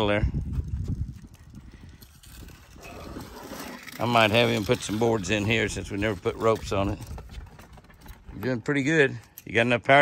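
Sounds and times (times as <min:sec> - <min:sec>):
power wheelchair motors and wheels: 0:00.6 - 0:08.2.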